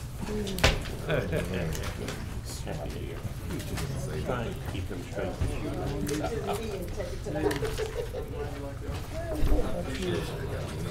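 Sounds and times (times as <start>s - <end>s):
murmur of voices: 0.0s - 10.9s.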